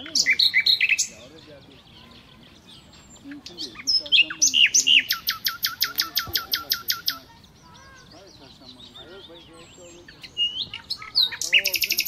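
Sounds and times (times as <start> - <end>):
soft bird chirps: 0.0 - 12.0
songbird singing: 0.0 - 12.0.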